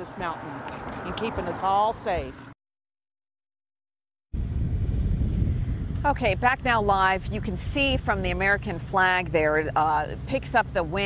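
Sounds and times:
wind buffeting microphone: 0:04.4 - 0:11.0.

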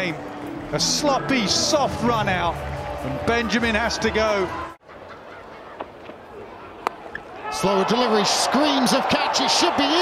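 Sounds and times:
faint stadium crowd: 0:00.0 - 0:10.0.

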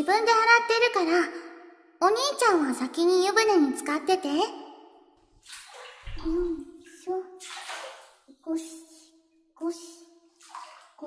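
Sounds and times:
bathwater splashing: 0:05.4 - 0:08.4, 0:10.3 - 0:11.0.

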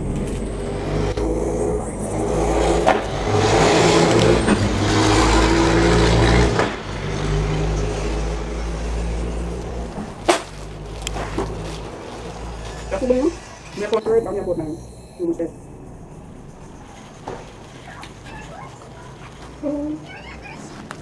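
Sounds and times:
vehicle engine running: 0:00.0 - 0:21.0.

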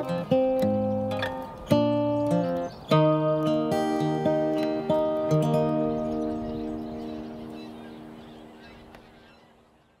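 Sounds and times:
acoustic guitar chord: 0:00.0 - 0:08.7.

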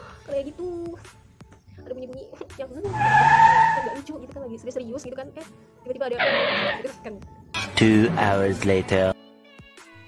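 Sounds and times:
car tyres screeching: 0:02.8 - 0:04.1, 0:06.2 - 0:06.9.

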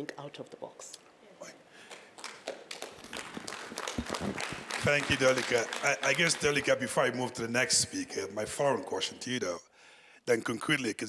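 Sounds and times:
audience applauding: 0:01.8 - 0:07.2.

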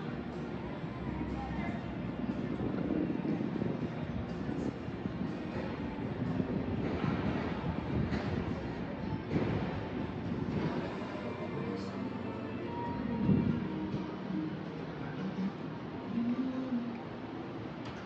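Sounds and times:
steady low rumble: 0:00.0 - 0:16.3
faint music: 0:00.0 - 0:18.0
voices: 0:00.0 - 0:18.0.

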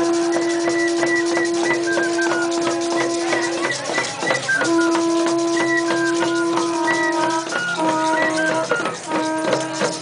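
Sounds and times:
conch shell trumpet note: 0:00.0 - 0:03.8, 0:04.6 - 0:10.0
hand drums beating: 0:00.0 - 0:10.0
tambourine jingling: 0:00.0 - 0:10.0.

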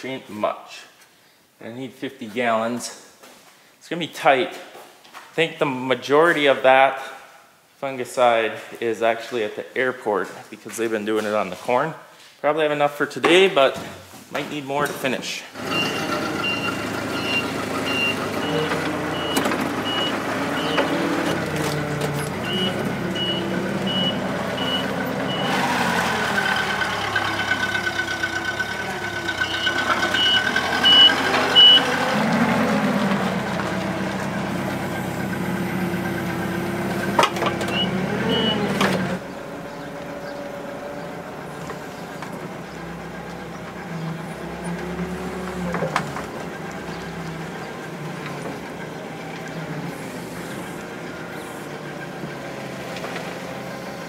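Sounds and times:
forklift engine running: 0:15.6 - 0:54.0
backup alarm beeping: 0:15.7 - 0:20.9, 0:22.4 - 0:25.6, 0:29.4 - 0:32.0, 0:37.7 - 0:38.7.

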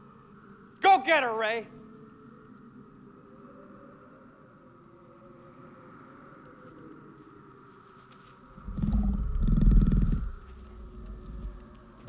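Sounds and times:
deep rough creature growl: 0:08.6 - 0:11.8.

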